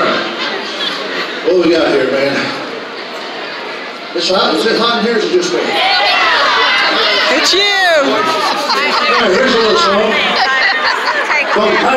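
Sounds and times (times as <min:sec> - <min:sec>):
chatter: 0:00.0 - 0:11.9.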